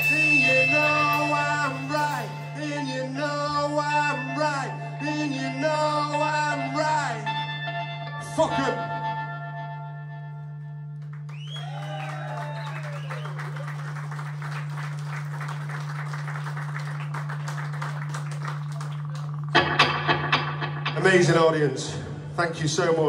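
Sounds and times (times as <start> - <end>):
audience clapping and cheering: 11.0 - 20.0
man talking: 21.0 - 23.0.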